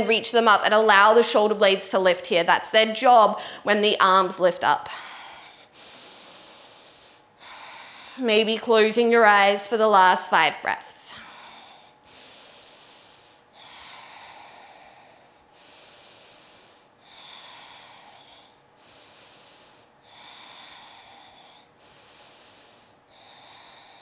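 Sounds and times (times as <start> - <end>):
woman breathing slowly: 3.3 - 3.7, 4.8 - 8.3, 11.0 - 24.0.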